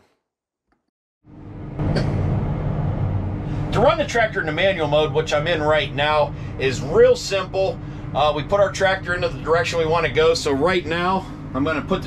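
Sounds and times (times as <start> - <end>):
tractor diesel engine humming: 1.3 - 12.0.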